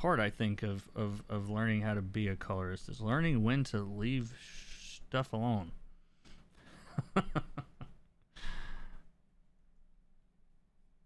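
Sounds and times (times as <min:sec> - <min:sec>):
man sighing: 0:08.3 - 0:09.1.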